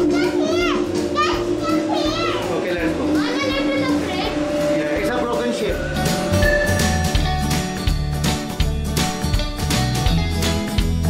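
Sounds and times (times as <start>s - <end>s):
children crying and calling: 0.0s - 4.7s
background music: 0.0s - 11.0s.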